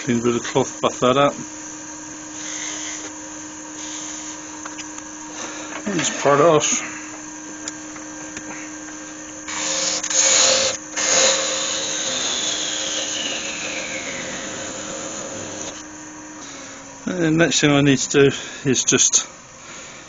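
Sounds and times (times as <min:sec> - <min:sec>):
wood lathe running: 0:00.0 - 0:03.1, 0:03.7 - 0:07.6, 0:08.8 - 0:15.8
parting tool rasping cut: 0:09.5 - 0:15.8.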